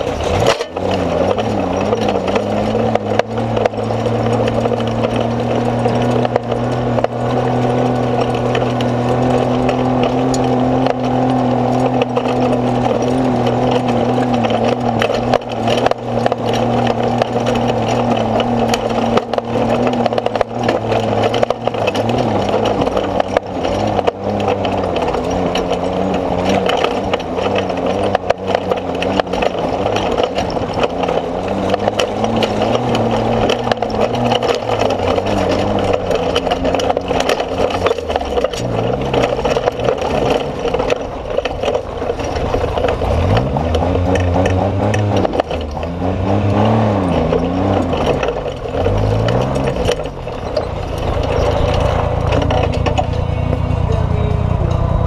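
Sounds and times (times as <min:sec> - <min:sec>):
clicks and rattles: 0:00.0 - 0:55.0.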